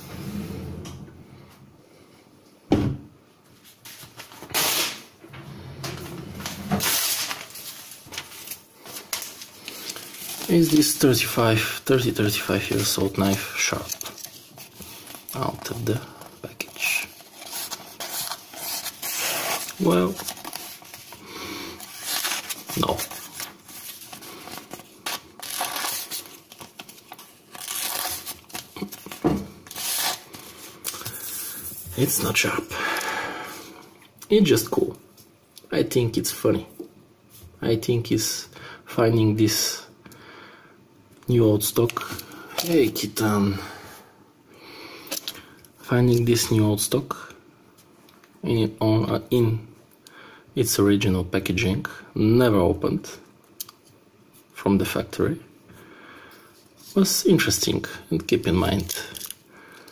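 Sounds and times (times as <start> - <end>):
paper rustling: 6.3 - 32.3.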